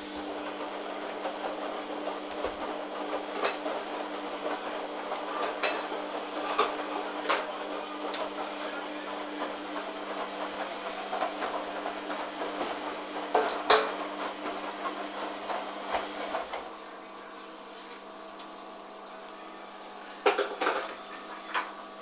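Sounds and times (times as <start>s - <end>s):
washing machine motor hum: 0.0s - 22.0s.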